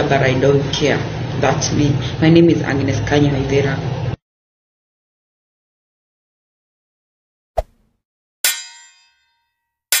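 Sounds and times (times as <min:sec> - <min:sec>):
bright metallic dings: 0:08.5 - 0:10.0.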